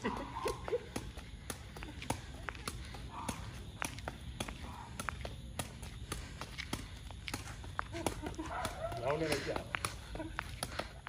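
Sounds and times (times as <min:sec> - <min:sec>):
ball kicked with sharp taps: 0:00.1 - 0:11.0.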